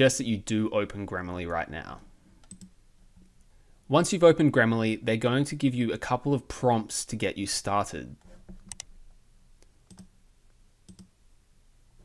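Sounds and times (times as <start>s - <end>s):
computer mouse clicks: 2.4s - 2.7s, 8.2s - 8.9s, 9.6s - 10.1s, 10.9s - 11.1s.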